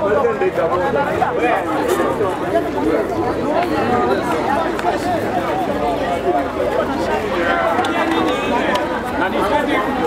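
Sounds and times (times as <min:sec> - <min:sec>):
crowd of men chattering: 0:00.0 - 0:10.0.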